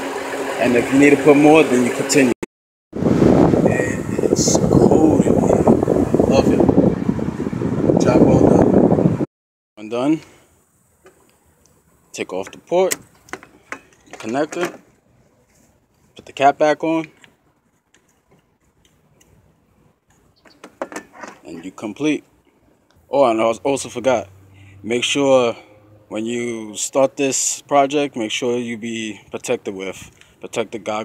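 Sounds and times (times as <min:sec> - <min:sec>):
air rushing from car vents: 0:03.0 - 0:09.2
air buffeting microphone: 0:03.0 - 0:09.3.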